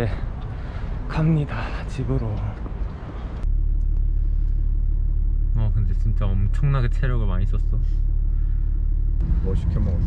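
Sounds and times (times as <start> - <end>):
low rumble inside car cabin: 0.0 - 10.0
outdoor noise: 0.0 - 10.0.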